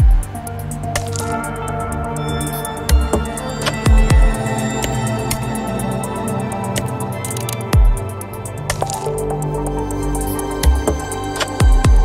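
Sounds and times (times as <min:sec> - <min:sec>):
minimal electronic music: 0:00.0 - 0:12.0.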